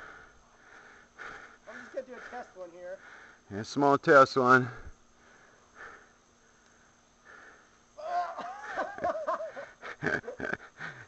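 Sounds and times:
person laughing: 0:08.0 - 0:11.0.

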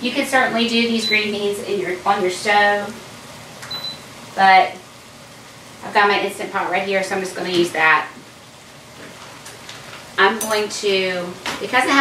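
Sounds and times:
food sizzling in a skillet: 0:00.5 - 0:12.0.

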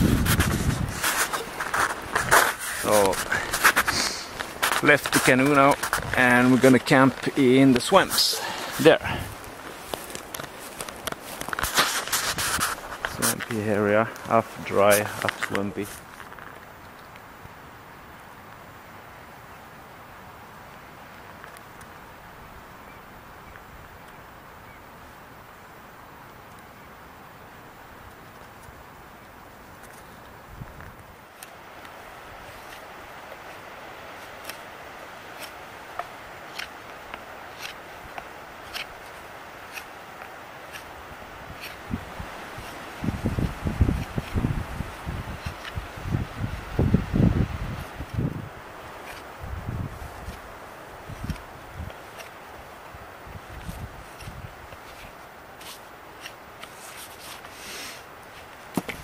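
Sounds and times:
wind buffeting microphone: 0:00.0 - 0:15.8, 0:41.3 - 0:48.6, 0:49.4 - 0:52.0, 0:53.0 - 0:54.6
knife carving wood: 0:10.1 - 0:13.4, 0:32.4 - 0:46.0, 0:48.9 - 0:49.4, 0:50.0 - 0:52.6, 0:53.5 - 0:59.0.

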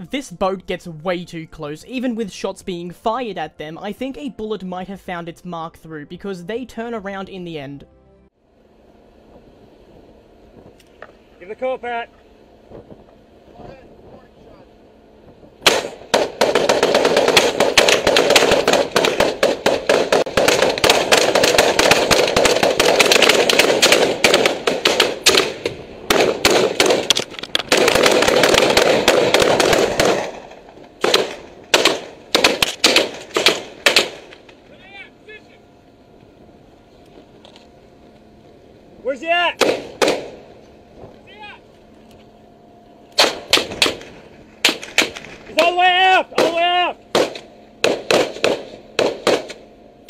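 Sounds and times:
automatic gunfire: 0:15.6 - 0:34.3, 0:39.6 - 0:40.4, 0:43.2 - 0:45.7, 0:46.4 - 0:49.6.

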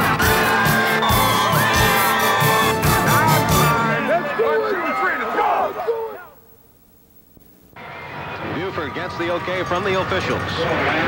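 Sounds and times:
voices shouting and yelling: 0:00.2 - 0:06.5.

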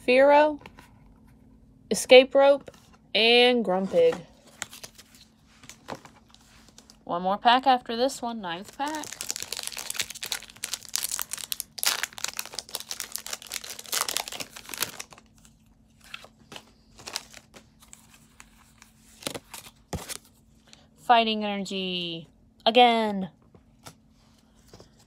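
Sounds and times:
foil wrapper tearing and crinkling: 0:08.7 - 0:15.5, 0:17.0 - 0:17.6.

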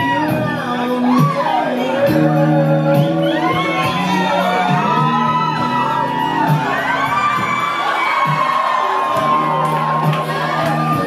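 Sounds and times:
audience whooping and cheering: 0:00.0 - 0:11.0
music: 0:00.0 - 0:11.0
high shouts: 0:02.9 - 0:11.0.

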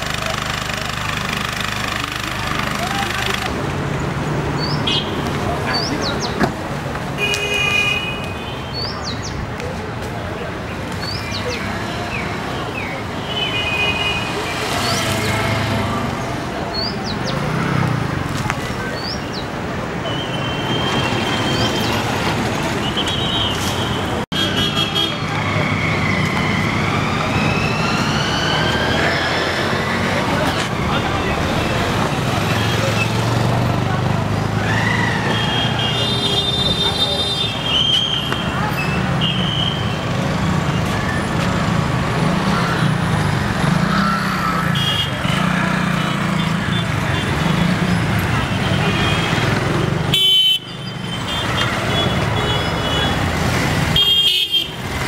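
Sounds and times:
road traffic noise: 0:00.0 - 0:55.0.

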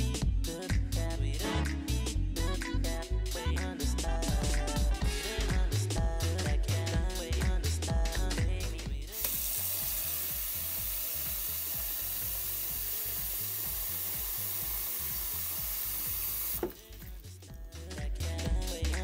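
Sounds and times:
music with a beat: 0:00.0 - 0:19.0
faucet running into plastic tub: 0:09.2 - 0:17.1.

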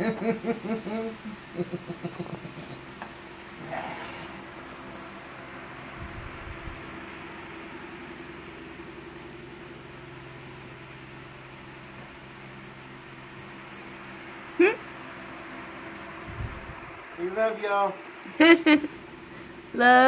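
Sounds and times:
room hum and hiss: 0:00.0 - 0:20.0.

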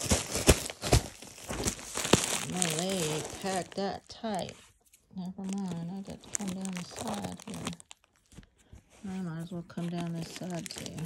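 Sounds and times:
plastic mailer bag crinkling: 0:00.0 - 0:11.0.

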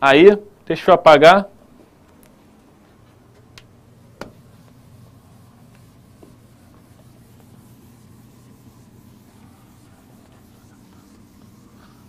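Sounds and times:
eraser scrubbing whiteboard: 0:04.0 - 0:12.0.

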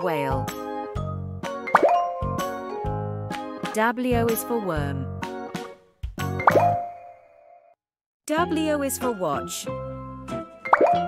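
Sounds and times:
cheerful children's music: 0:00.0 - 0:07.6, 0:08.3 - 0:11.0
cartoon plop blip: 0:01.7 - 0:02.1, 0:06.4 - 0:07.1, 0:10.7 - 0:11.0.

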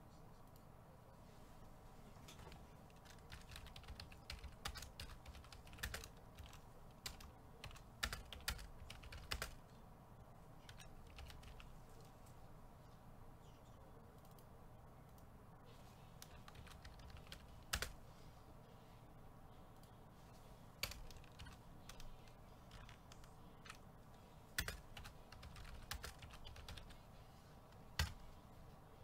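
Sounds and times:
computer keyboard typing: 0:02.3 - 0:09.6, 0:10.6 - 0:12.1, 0:16.2 - 0:18.0, 0:20.8 - 0:23.9, 0:24.6 - 0:27.0, 0:27.7 - 0:28.3.

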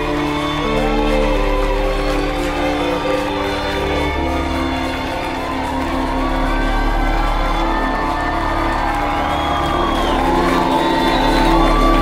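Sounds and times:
audience cheering: 0:00.0 - 0:12.0
electric violin gliding notes: 0:00.0 - 0:12.0
sustained low drone: 0:00.0 - 0:12.0.

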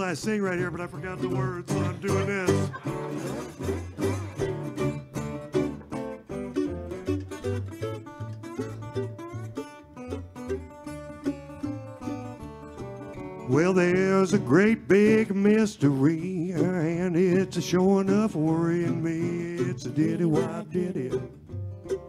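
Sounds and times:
fingerpicked resonator guitar: 0:00.0 - 0:22.0.

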